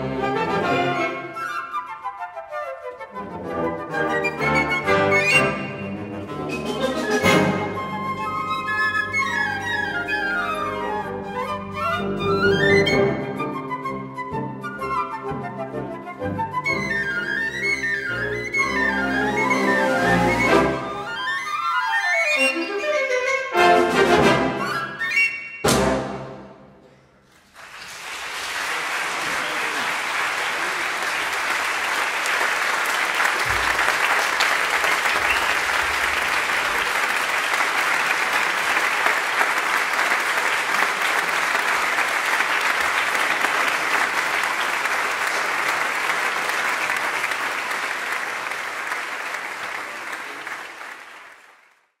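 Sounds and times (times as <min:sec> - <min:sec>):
audience applauding: 0:27.3 - 0:52.0.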